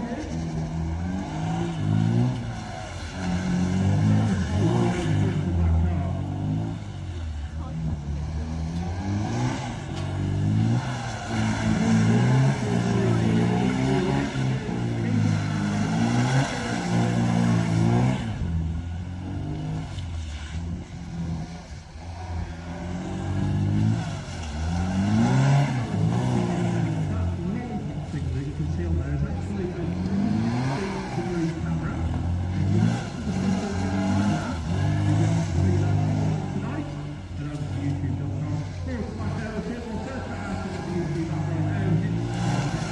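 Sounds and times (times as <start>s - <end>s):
car engines revving: 0.0s - 42.9s.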